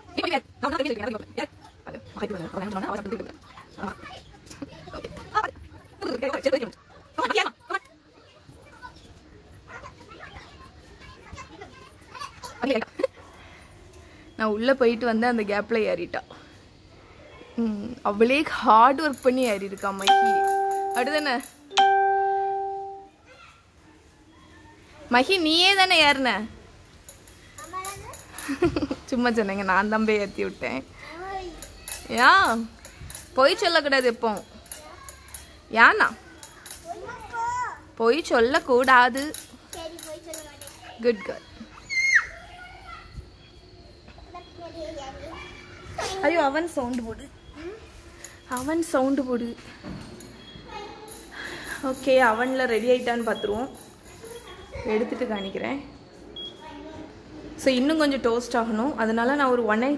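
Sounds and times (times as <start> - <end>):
young children talking: 0.0 - 14.0, 19.8 - 26.1, 27.5 - 29.8, 30.8 - 32.8, 33.4 - 38.4, 39.2 - 48.1, 50.6 - 52.0, 54.2 - 58.5
children playing: 1.1 - 14.3, 16.5 - 18.6, 19.3 - 25.6, 27.2 - 29.6, 30.8 - 52.7, 53.9 - 57.9
young girl's voice: 27.6 - 28.2, 31.0 - 31.6, 36.8 - 37.8, 39.8 - 41.0, 44.3 - 46.2, 56.6 - 57.1.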